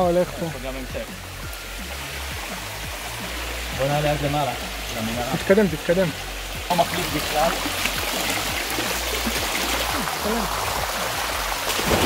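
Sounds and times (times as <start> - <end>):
water running over rocks: 0.0 - 12.0.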